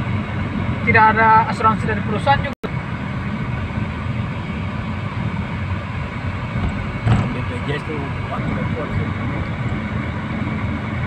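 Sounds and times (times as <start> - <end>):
car road and engine noise: 0.0 - 11.0
faint voices: 7.1 - 9.6.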